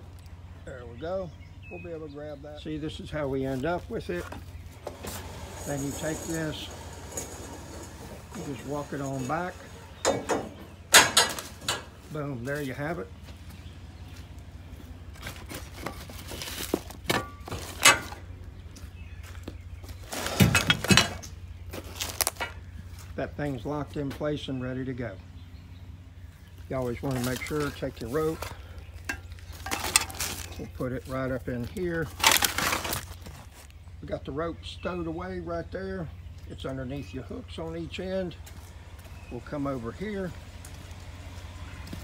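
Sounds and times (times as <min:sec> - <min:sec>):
tarp and plastic rustling: 0:03.3 - 0:09.9, 0:15.1 - 0:18.2, 0:19.2 - 0:23.2, 0:26.6 - 0:33.8.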